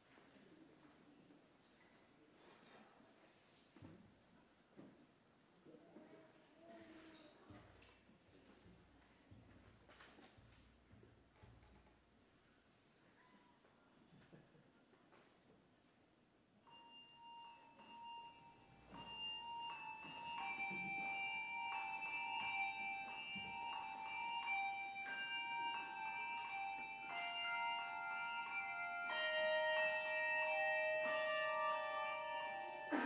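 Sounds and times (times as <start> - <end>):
handbells ringing: 16.6 - 33.0.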